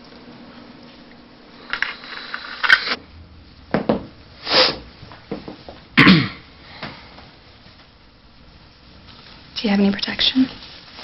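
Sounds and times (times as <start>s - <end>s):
person sniffing through straw: 4.4s - 4.9s.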